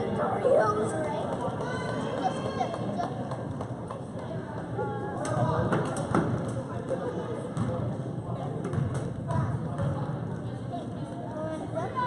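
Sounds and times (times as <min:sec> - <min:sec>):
spectators chatting: 0:00.0 - 0:12.0
players running on court: 0:00.9 - 0:04.8.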